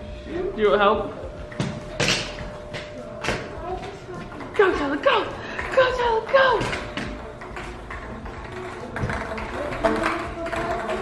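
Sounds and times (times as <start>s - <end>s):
balls knocking in plastic tube: 5.6s - 11.0s.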